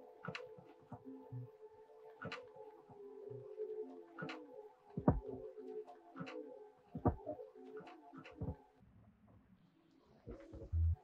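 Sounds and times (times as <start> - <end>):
deep low electronic tone: 10.6 - 11.0.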